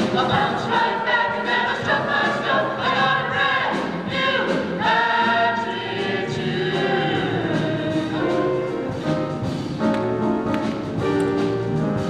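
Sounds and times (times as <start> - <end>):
vocal ensemble singing in harmony: 0.0 - 9.2.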